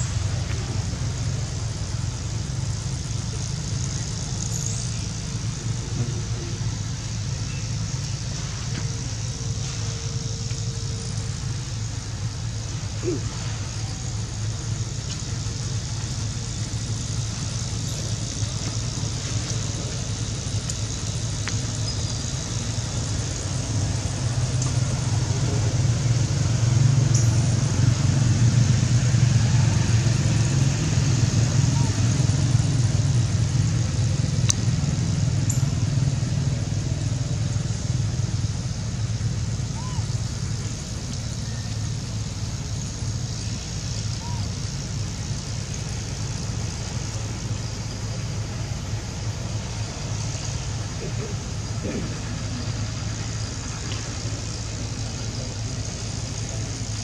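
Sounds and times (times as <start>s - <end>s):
vehicle engine rumble: 0.0s - 57.0s.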